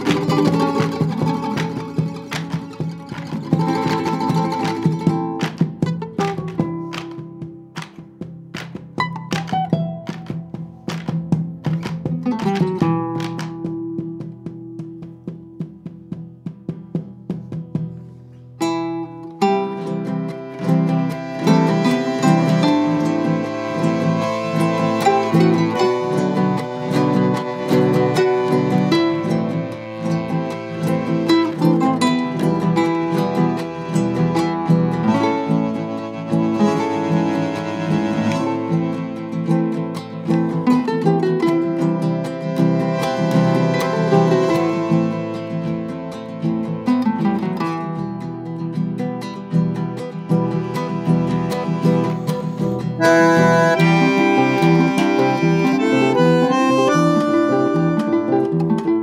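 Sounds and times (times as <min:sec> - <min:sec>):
plucked and strummed guitars: 0:00.0 - 0:59.0.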